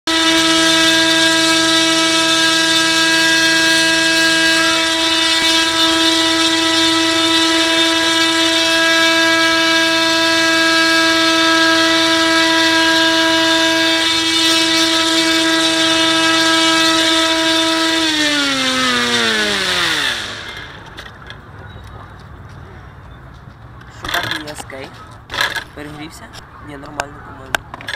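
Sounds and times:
bait boat motors whining: 0.0 - 23.0, 23.7 - 27.9.

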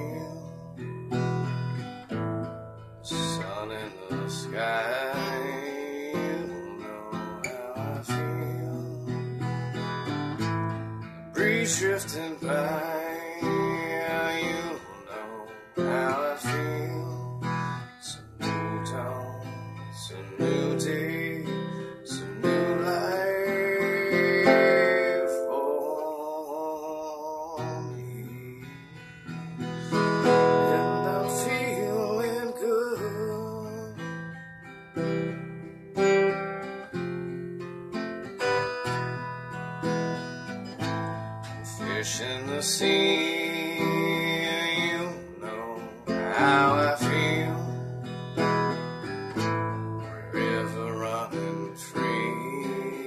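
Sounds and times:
man singing: 0.0 - 1.4, 3.0 - 10.6, 11.3 - 34.5, 40.8 - 53.0
acoustic guitar strumming: 0.0 - 53.0.

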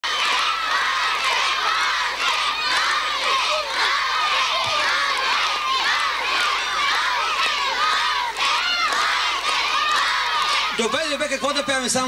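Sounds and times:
children shouting and cheering: 0.0 - 12.0.

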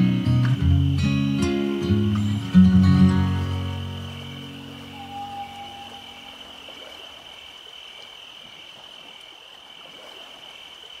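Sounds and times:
insects chirring: 0.0 - 11.0
low repeating chirp: 3.7 - 6.6.

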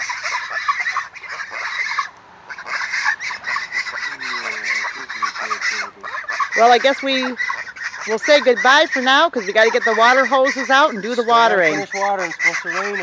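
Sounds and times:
low goose calls: 0.0 - 13.0
poultry flock chattering: 0.0 - 13.0.

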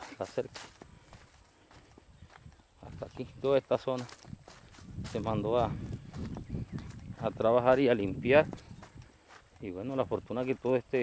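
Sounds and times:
footsteps on dry leaves: 0.0 - 11.0.

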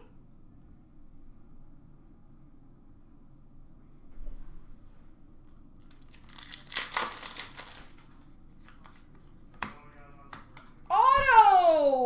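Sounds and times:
foil wrapper crinkling and tearing: 5.8 - 8.2.

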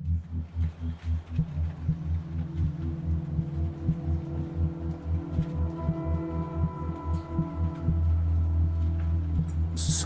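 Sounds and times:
low synthesized bass pulse: 0.0 - 10.0.

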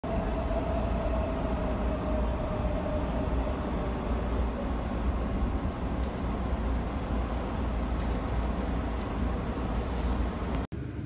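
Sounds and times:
moving vehicle rumble: 0.0 - 11.0.

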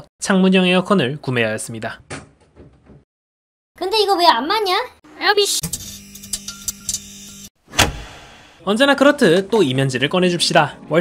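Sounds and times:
loud hit: 7.7 - 8.6.

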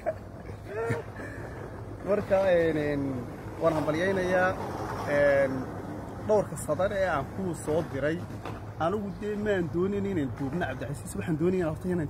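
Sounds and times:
man talking: 2.0 - 12.0.

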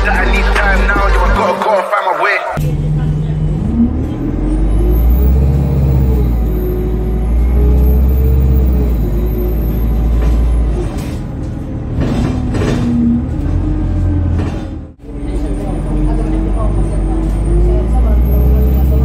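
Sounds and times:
bus diesel engine revving: 2.6 - 19.0.

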